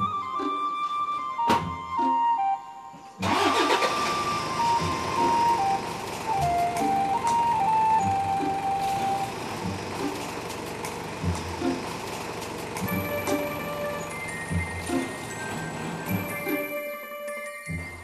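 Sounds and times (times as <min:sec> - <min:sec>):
background music with flute melody: 0:00.0 - 0:09.4, 0:12.9 - 0:18.0
car engine running: 0:03.2 - 0:16.7.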